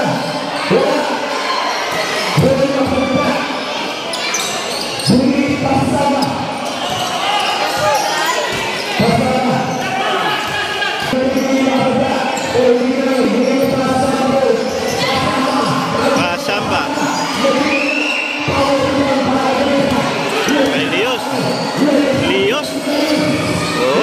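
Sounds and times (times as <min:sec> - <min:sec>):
crowd chatter and shouts: 0:00.0 - 0:24.0.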